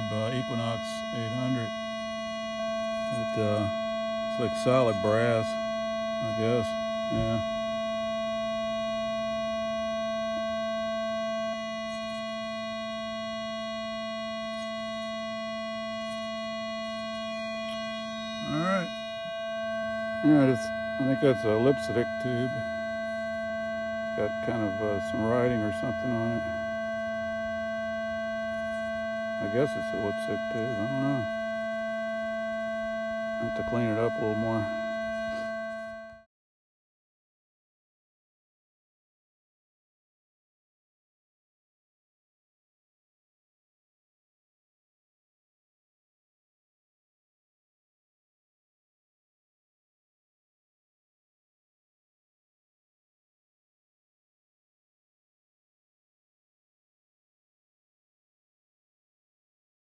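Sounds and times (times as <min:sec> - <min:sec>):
steady electronic whine: 0:00.0 - 0:36.3
steady hum of held tones: 0:00.0 - 0:36.3
voice sliding in pitch: 0:18.4 - 0:19.0.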